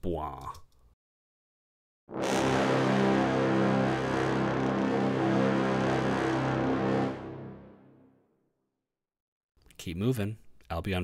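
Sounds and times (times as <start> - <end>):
brass ensemble holding low chord: 2.1 - 8.2.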